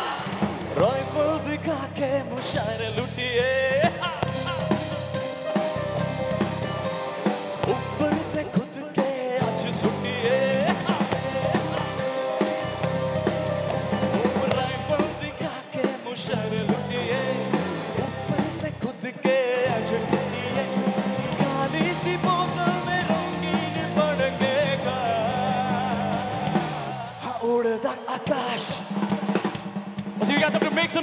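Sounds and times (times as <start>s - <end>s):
bass guitar: 0.0s - 8.7s, 9.4s - 15.5s, 16.3s - 19.0s, 19.6s - 27.2s
electric guitar: 0.0s - 27.2s
drum kit: 0.0s - 27.3s, 28.2s - 31.0s
person singing: 0.0s - 29.1s.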